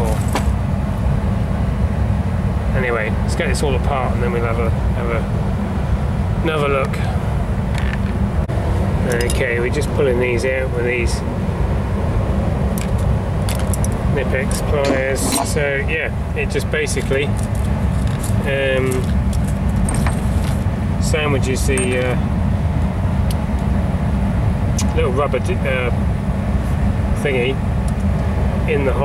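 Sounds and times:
low rumble of machinery: 0.0 - 29.0.

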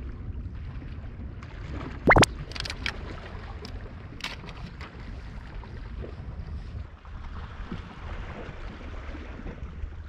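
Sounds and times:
wind rumbling on microphone: 0.0 - 10.0
brief clicks: 2.1 - 2.9.

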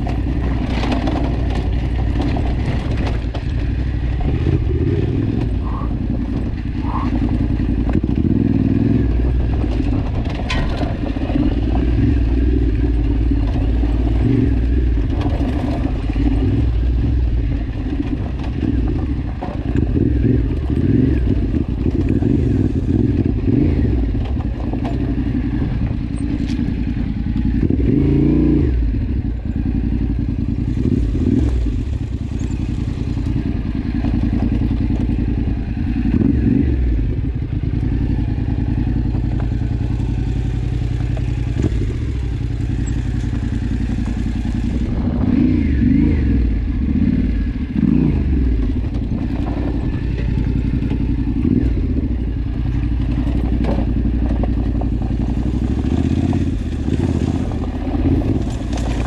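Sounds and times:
loose stones clattering under tyres: 0.0 - 27.6, 29.6 - 36.6, 37.5 - 44.9, 47.8 - 59.0
motorcycle engine with throttle blips: 0.0 - 59.0.

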